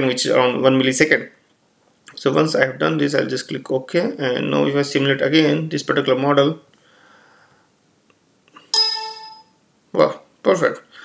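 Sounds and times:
computer chime ding: 0:08.7 - 0:09.6.

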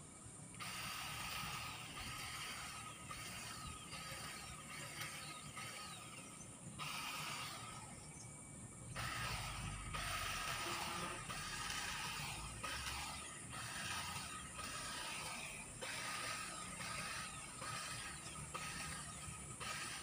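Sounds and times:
electric grass trimmer whirring: 0:00.0 - 0:08.2, 0:08.9 - 0:20.0.

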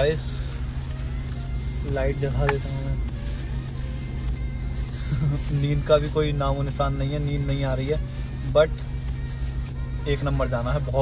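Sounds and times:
car engine and tyres rumbling: 0:00.0 - 0:11.0
music: 0:00.0 - 0:11.0.

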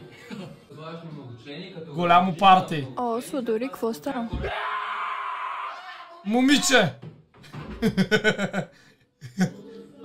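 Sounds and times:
man laughing: 0:07.8 - 0:09.6.

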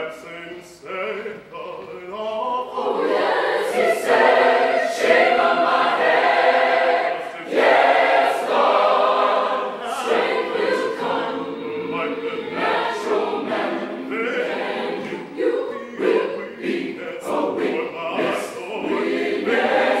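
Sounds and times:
choir singing a cappella: 0:00.0 - 0:20.0.

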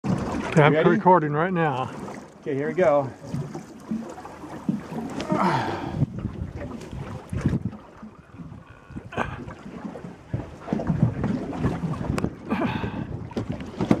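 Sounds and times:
wind buffeting microphone: 0:04.4 - 0:14.0.

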